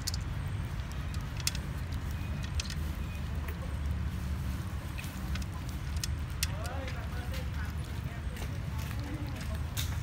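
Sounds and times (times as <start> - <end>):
cats crunching kibble: 0.0 - 10.0.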